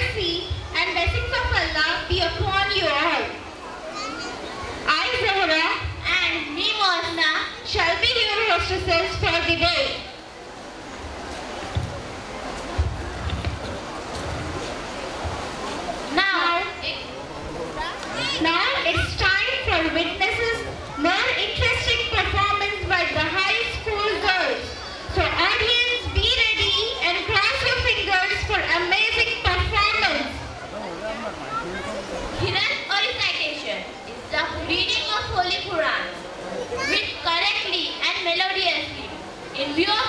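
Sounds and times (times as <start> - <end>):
girl speaking: 17.8 - 19.4, 36.7 - 38.3.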